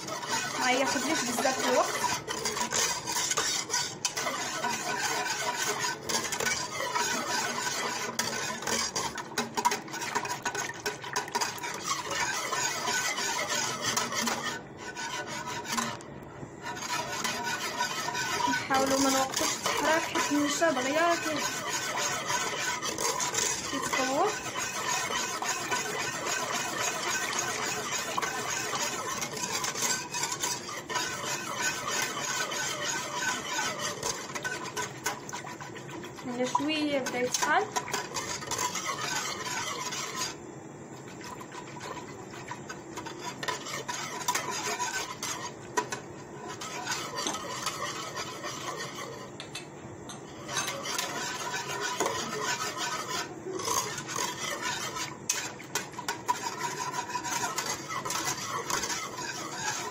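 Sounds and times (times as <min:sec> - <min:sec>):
whisk scraping metal pot: 0:00.0 - 0:59.9.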